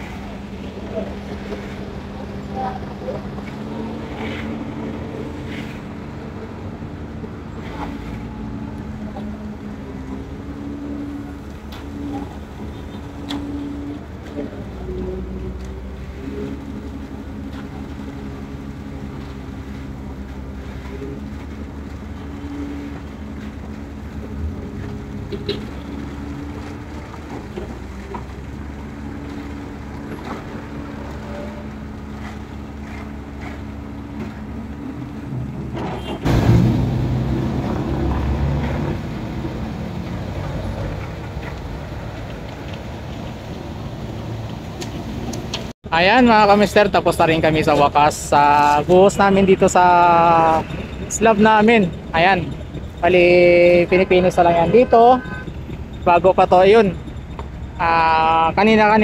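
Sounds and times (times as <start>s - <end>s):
diesel engines running: 0.0s - 59.0s.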